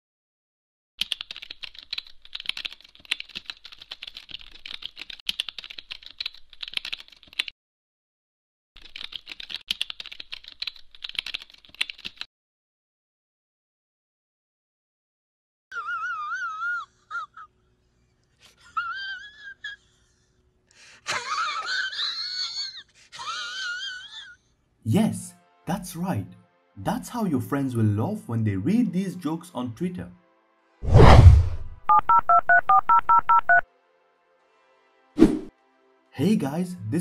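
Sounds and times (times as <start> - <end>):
man's squealing wheezy laugh: 15.7 - 17.6, 18.5 - 20.2, 21.1 - 24.4
telephone keypad beeps: 31.9 - 33.6.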